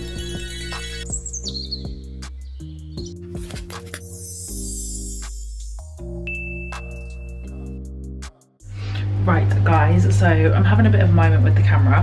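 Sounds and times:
high chirping sound: 0.0s - 3.2s, 3.8s - 7.8s
intro music with beat: 0.0s - 8.6s.

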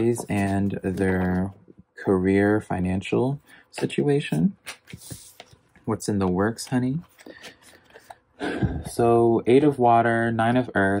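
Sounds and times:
cards rustling: 0.0s - 1.6s, 3.5s - 8.3s.

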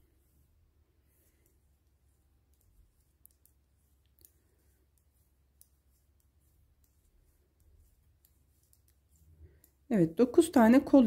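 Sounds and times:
metal knitting needles clicking: 2.4s - 10.2s.

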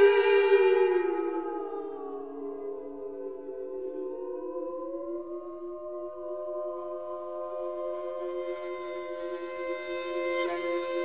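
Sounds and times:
viola sustained notes: 5.5s - 11.0s.

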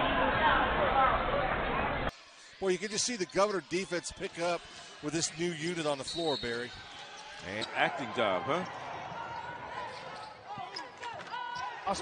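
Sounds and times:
sneaker squeaks: 5.8s - 8.1s.

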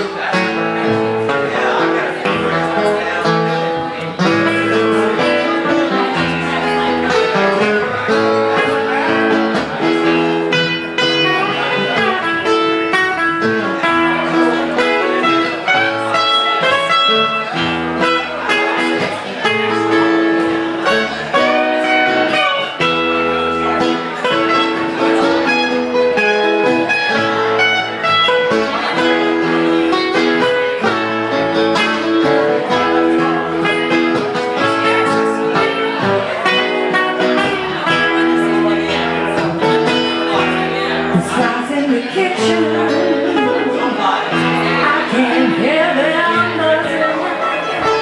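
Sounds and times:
acoustic guitar playing: 0.0s - 48.0s
upright bass notes: 0.0s - 48.0s.

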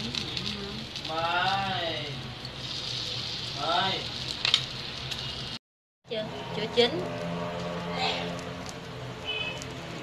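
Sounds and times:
batter sizzling in a hot pan: 0.0s - 10.0s.

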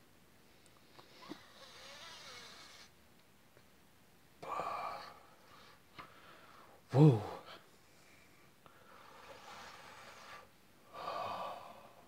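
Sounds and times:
person breathing: 4.4s - 12.0s.

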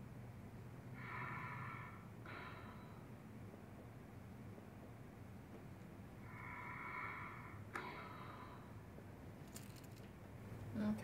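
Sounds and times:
deep breath: 0.8s - 3.4s, 6.2s - 9.0s.

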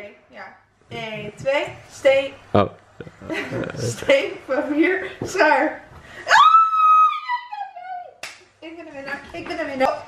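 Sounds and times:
woman squealing: 6.3s - 8.2s
hands smacking: 8.2s - 8.5s.

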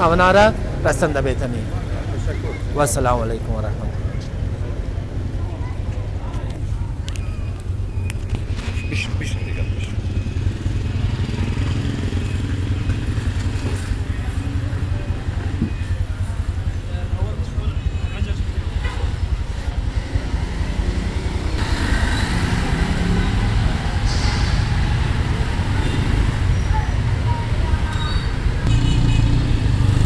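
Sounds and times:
harsh vehicle noise: 0.0s - 30.0s.

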